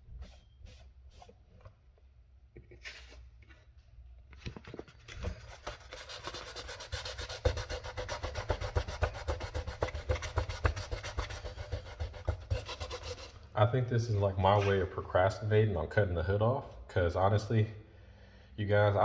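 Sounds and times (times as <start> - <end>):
sandpaper rubbing on plastic: 5.5 - 13.4.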